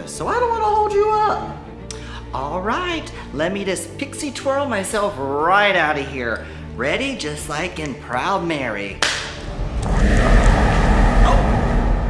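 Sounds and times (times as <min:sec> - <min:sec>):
deep rumbling rush: 0:09.2 - 0:12.0.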